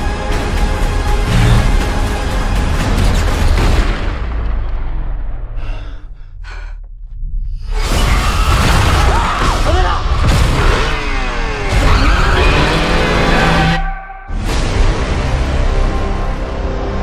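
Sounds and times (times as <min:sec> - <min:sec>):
movie trailer music: 0:00.0 - 0:17.0
heavy low rumble: 0:03.9 - 0:07.8.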